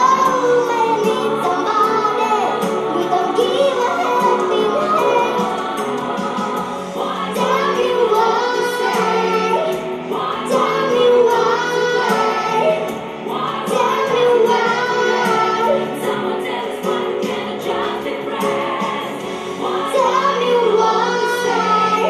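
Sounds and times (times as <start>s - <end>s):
girl singing pop song: 0.0s - 22.0s.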